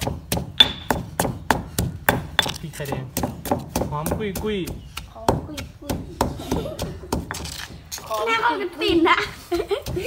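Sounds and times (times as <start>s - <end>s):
pestle pounding in stone mortar: 0.0s - 8.0s, 8.8s - 10.0s.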